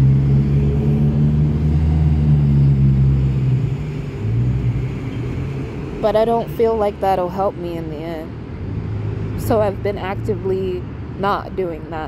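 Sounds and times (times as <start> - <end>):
vehicle engine running: 0.0 - 8.2.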